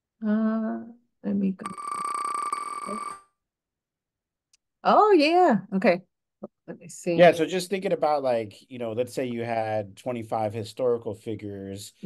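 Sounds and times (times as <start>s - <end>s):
high electronic tone: 1.6s - 3.2s.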